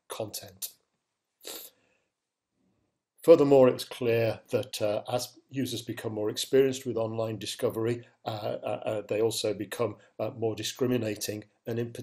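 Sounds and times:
person breathing: 0:01.4 - 0:02.2.

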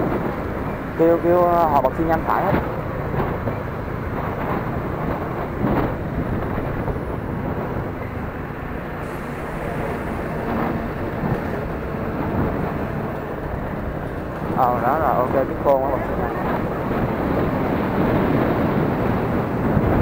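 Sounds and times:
wind rushing: 0:00.0 - 0:20.0.

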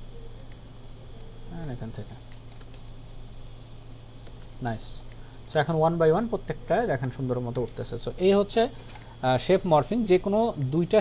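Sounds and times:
low steady hum: 0:00.0 - 0:11.0
keyboard and mouse clicks: 0:00.3 - 0:00.6, 0:02.2 - 0:03.0, 0:07.4 - 0:07.9, 0:10.4 - 0:10.9.

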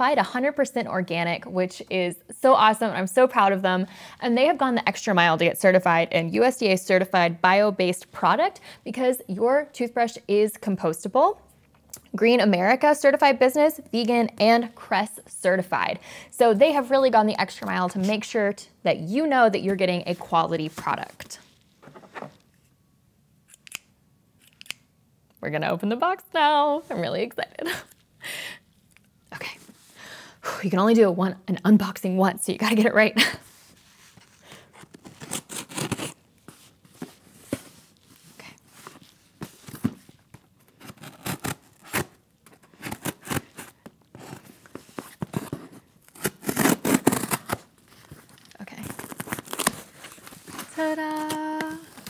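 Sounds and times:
scissors handling: 0:23.5 - 0:24.8
cardboard box tearing open: 0:34.8 - 0:36.2, 0:40.8 - 0:42.2, 0:42.8 - 0:47.7, 0:48.9 - 0:51.6.

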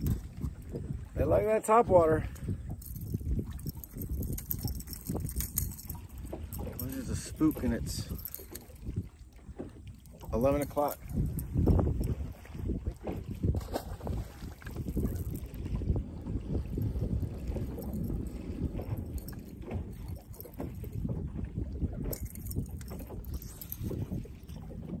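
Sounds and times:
water lapping at boat hull: 0:00.0 - 0:25.0
wind buffeting microphone: 0:00.0 - 0:25.0.

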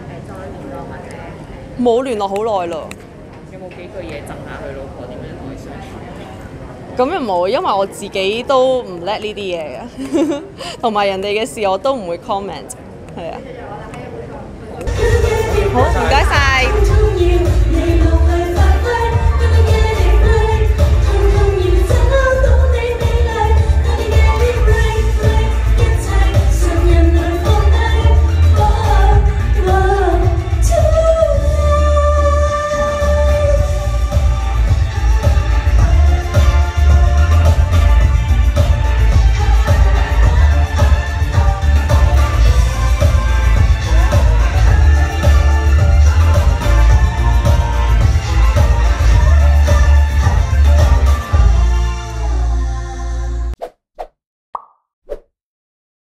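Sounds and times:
woman singing into microphone: 0:14.9 - 0:38.2, 0:38.9 - 0:53.5
backing track with bass beat: 0:14.9 - 0:51.8.

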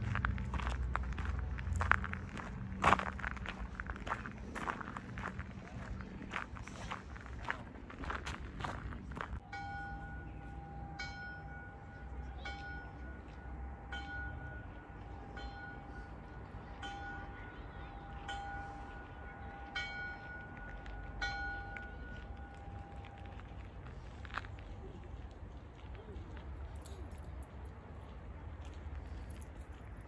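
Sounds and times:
footsteps crunching on gravel: 0:00.0 - 0:09.4.

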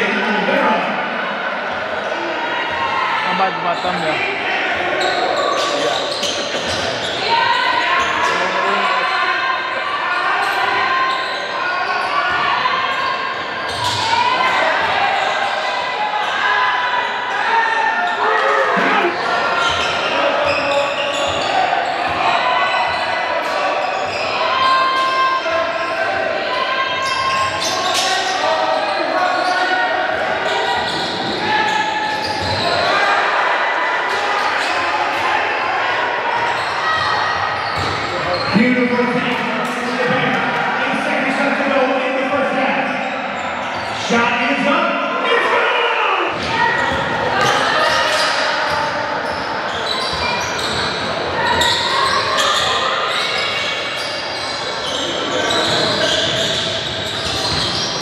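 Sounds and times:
indistinct voices echoing: 0:00.0 - 0:58.0.

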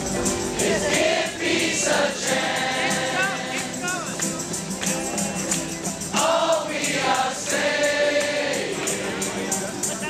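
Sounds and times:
crowd singing together: 0:00.0 - 0:10.0.

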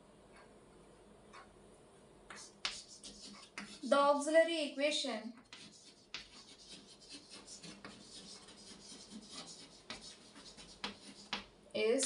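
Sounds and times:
chalk tapping and scratching: 0:02.3 - 0:04.0, 0:05.4 - 0:11.5.

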